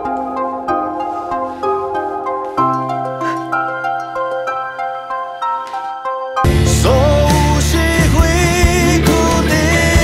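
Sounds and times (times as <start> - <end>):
soft slow instrumental melody: 0.0 - 10.0.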